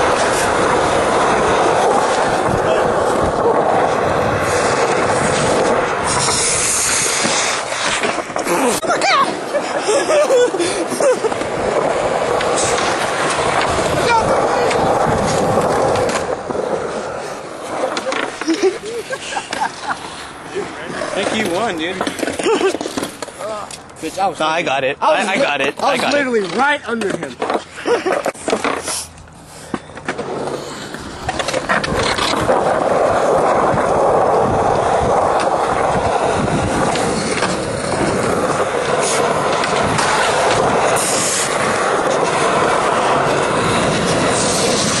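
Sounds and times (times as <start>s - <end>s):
skateboard wheels rolling on concrete: 0.0s - 45.0s.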